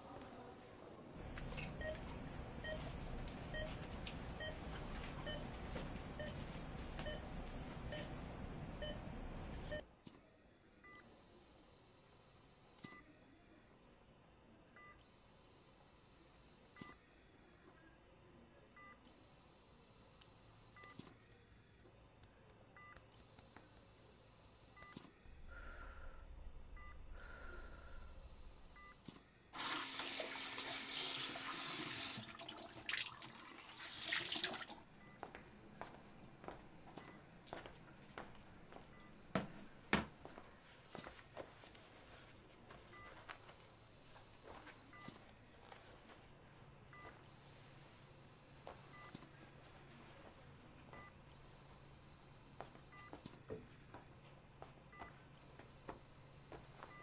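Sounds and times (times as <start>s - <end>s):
noisy hum with faint ticks: 1.2s - 10.2s, 18.8s - 25.2s, 35.0s - 57.0s.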